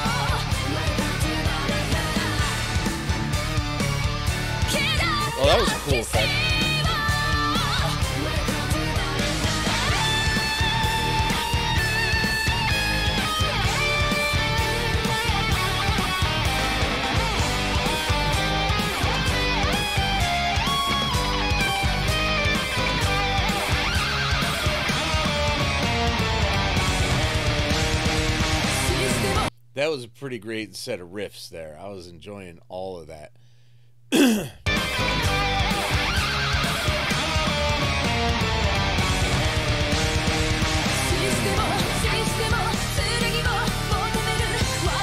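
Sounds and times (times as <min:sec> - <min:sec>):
fast drums: 0:00.0 - 0:29.4
bass: 0:00.0 - 0:30.3, 0:34.1 - 0:45.0
electric guitar riffs: 0:06.2 - 0:29.4.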